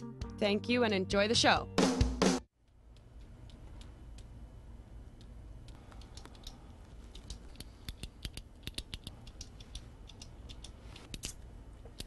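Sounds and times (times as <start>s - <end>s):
low room hum: 2.5s - 12.0s
ballpoint pen clicking: 5.2s - 11.4s.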